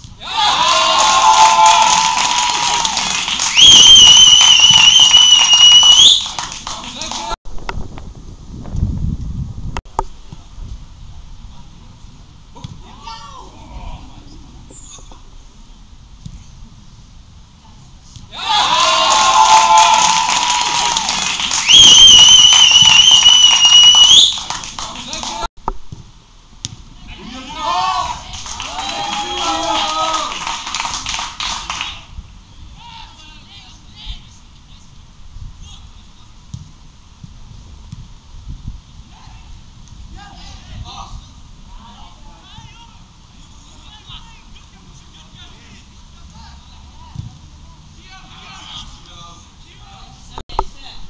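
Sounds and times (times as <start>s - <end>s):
crowd shouting and cheering: 0.2s - 7.4s, 18.3s - 25.5s, 27.0s - 32.1s
scattered claps: 1.0s - 7.4s, 19.1s - 25.5s, 28.3s - 32.0s
long high whistle blast: 3.5s - 6.2s, 21.6s - 24.4s.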